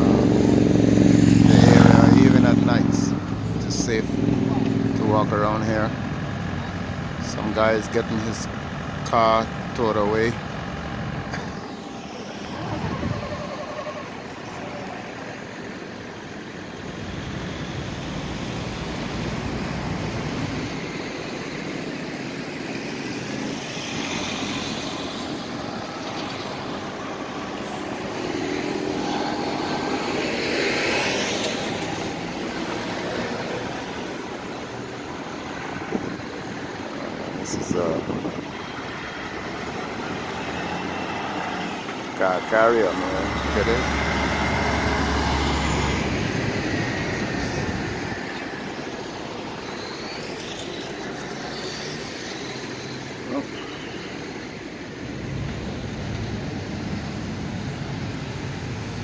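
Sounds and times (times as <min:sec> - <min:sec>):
vehicle passing close: 0:00.0 - 0:53.5
road traffic rushing: 0:00.0 - 0:59.0
truck engine rumble: 0:00.0 - 0:59.0.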